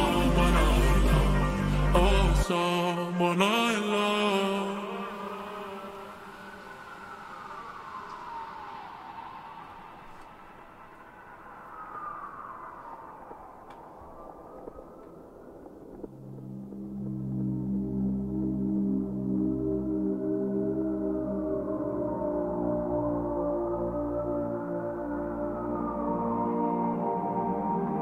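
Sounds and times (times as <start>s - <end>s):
person singing: 0.0s - 7.1s
low synth notes: 0.0s - 8.4s, 13.2s - 28.0s
wailing siren sound effect: 0.0s - 28.0s.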